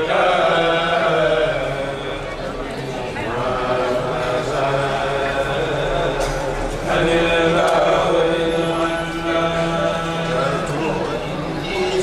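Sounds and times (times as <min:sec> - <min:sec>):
men chanting into microphones: 0:00.0 - 0:12.0.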